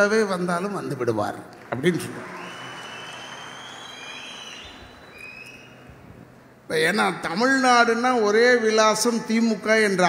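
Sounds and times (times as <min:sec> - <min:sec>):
audience applause: 0:01.6 - 0:05.5.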